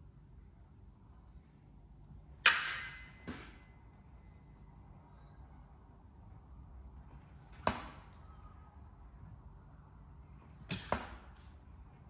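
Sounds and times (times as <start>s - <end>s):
metal fencing blades clashing: 2.4s - 3.6s, 10.7s - 11.1s.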